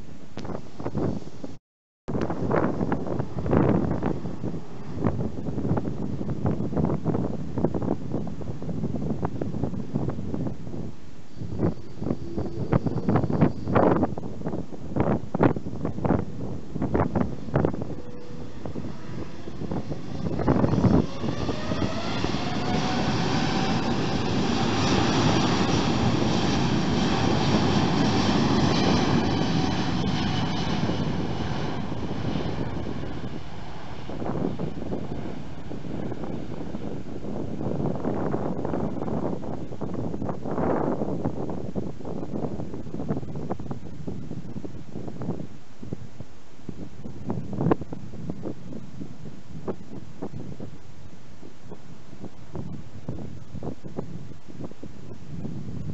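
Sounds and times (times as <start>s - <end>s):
wind gusts on microphone: 0.0s - 55.9s
jet engines spooling up: 11.3s - 14.0s, 15.6s - 40.2s
rising engine whine: 11.3s - 43.3s.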